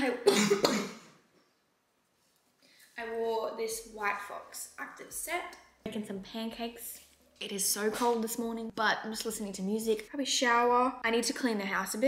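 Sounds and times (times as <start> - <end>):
woman coughing: 0.2 - 1.1.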